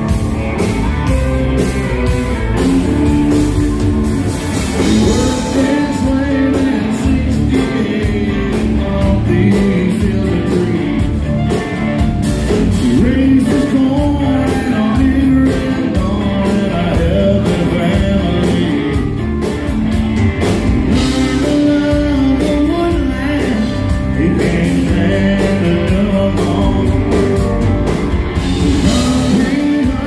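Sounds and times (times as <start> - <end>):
country-rock band playing: 0.0 - 30.0
man singing: 4.7 - 19.2, 20.9 - 27.6, 28.6 - 30.0.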